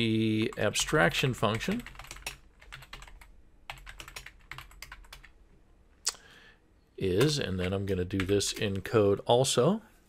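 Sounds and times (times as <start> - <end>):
keyboard typing: 0.4 - 5.3, 7.2 - 8.8.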